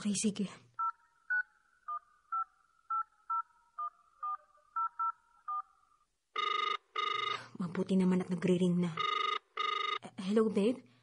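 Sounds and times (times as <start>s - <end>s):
telephone keypad tones: 0.8s - 5.7s, 6.4s - 7.4s, 9.0s - 10.0s.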